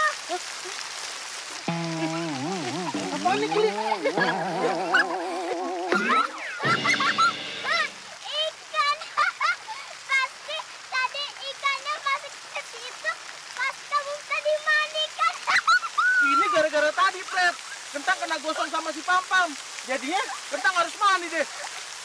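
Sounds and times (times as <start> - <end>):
held tone: 1.7 - 8.1
wobbling sound effect: 1.7 - 8.1
young girl giggling: 2.0 - 7.3.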